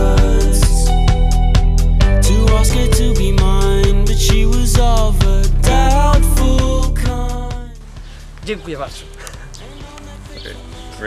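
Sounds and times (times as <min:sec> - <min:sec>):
faint background music: 0:02.2 - 0:11.0
man saying okay: 0:08.4 - 0:09.5.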